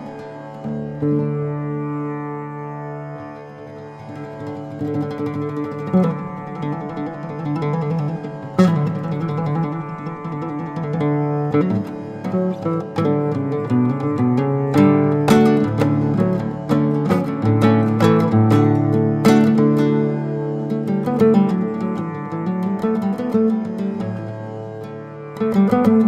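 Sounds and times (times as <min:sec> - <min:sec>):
fingerstyle nylon-string guitar: 0:00.0 - 0:02.6, 0:03.2 - 0:26.0
guitar chord strums: 0:04.0 - 0:26.0.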